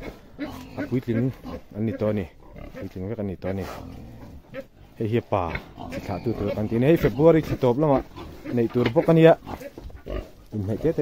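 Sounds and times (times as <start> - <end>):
pig grunting and snuffling: 0.0 - 11.0
man talking: 0.7 - 3.8, 5.0 - 9.7, 10.5 - 11.0.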